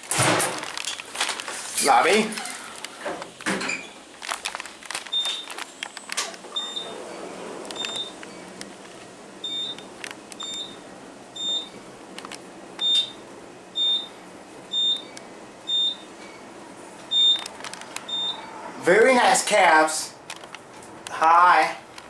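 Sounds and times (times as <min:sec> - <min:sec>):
elevator ride noise: 0:00.0 - 0:22.0.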